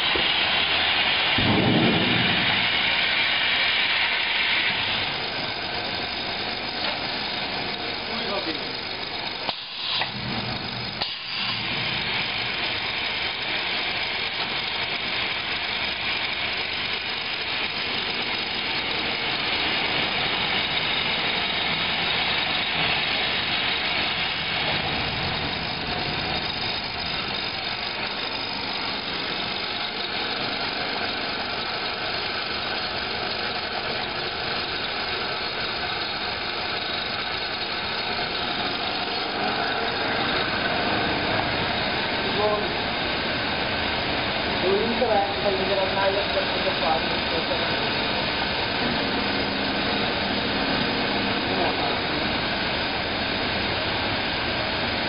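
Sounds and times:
roller conveyors and machinery humming: 0:00.0 - 0:55.0.

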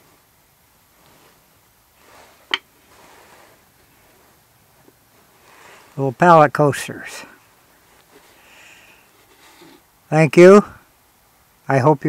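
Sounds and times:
handling rustle: 0:00.8 - 0:06.1, 0:07.4 - 0:09.9.

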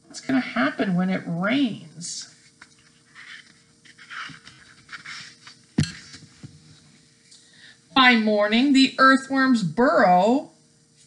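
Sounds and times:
book pages rustling: 0:02.4 - 0:06.6.

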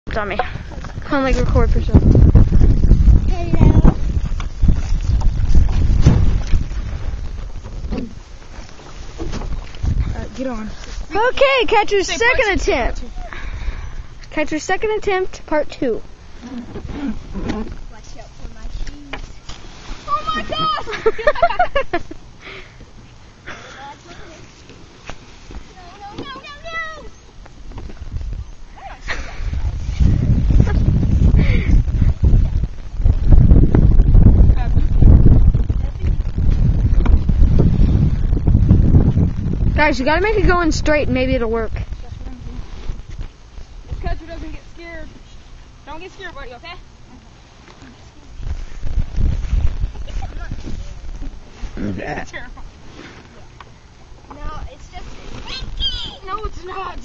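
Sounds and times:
wind buffeting microphone: 0:00.1 - 0:19.0, 0:27.6 - 0:47.5, 0:48.2 - 0:52.8.

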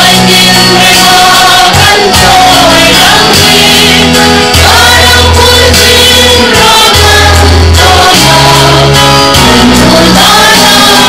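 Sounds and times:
amplified musical backing: 0:00.0 - 0:11.0
group singing: 0:00.0 - 0:11.0.

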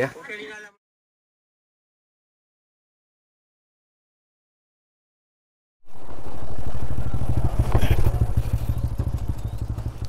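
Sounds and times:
motorcycle engine running: 0:05.9 - 0:10.0.

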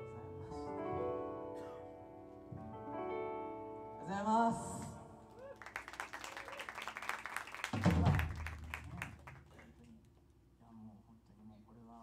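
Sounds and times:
audience applauding: 0:05.3 - 0:09.9.

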